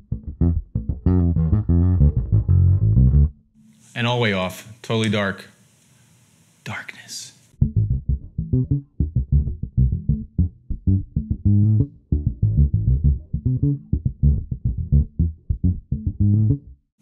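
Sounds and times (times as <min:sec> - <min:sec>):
electric bass plucked: 0:00.0 - 0:03.5, 0:07.6 - 0:16.9.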